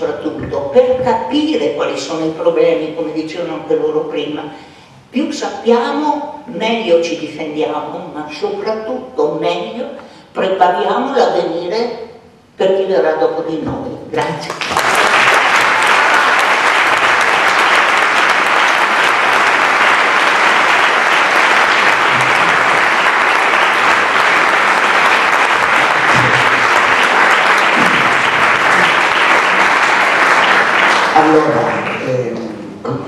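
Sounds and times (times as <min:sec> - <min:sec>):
audience applauding: 0:14.5 - 0:32.3.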